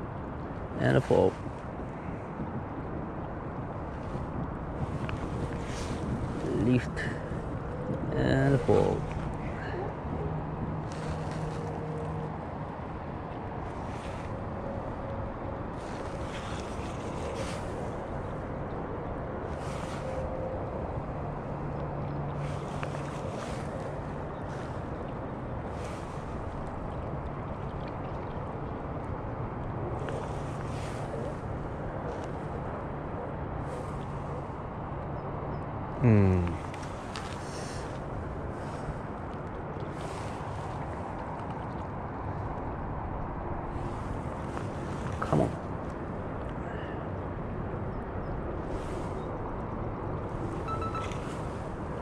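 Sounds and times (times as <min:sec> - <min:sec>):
wind on microphone: 0:00.0 - 0:35.9, 0:36.6 - 0:52.0.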